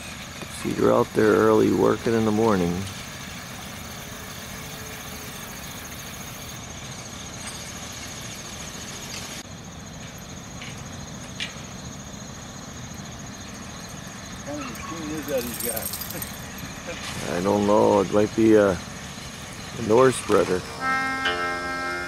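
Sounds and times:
insects trilling: 0.0 - 22.0.

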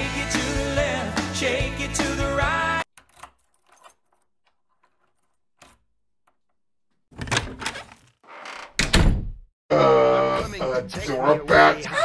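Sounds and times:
key clicking in door lock: 2.9 - 6.4
door rattling and scraping open: 7.1 - 9.4.

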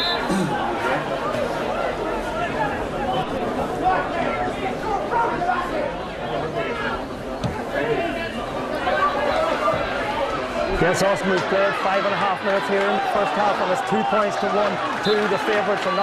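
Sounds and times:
crowd of voices talking: 0.0 - 16.0.

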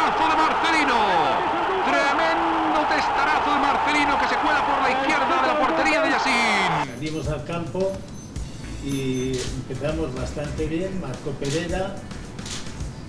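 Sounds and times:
man commentating excitedly: 0.0 - 6.9.

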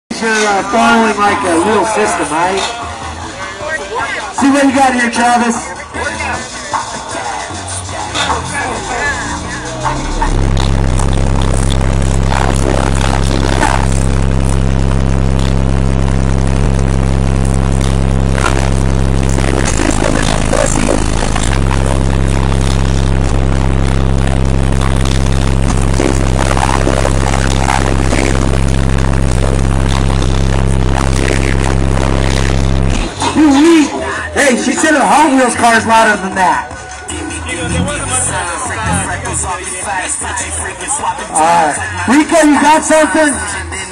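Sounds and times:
subwoofer playing low bass tone: 7.2 - 43.8.

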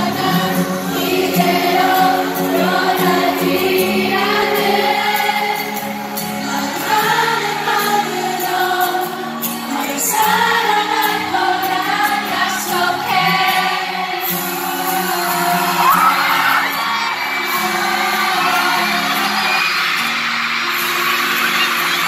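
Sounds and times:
pop backing music: 0.0 - 22.0.

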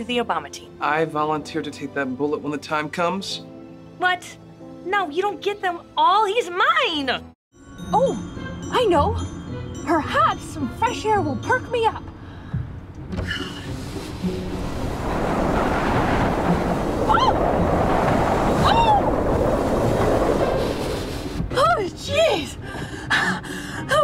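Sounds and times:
wind rushing through car window: 13.7 - 22.4.

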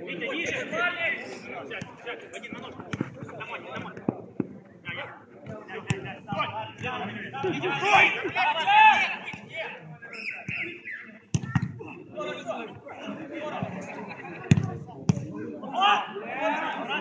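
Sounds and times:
football kicked thuds: 14.5 - 15.3.

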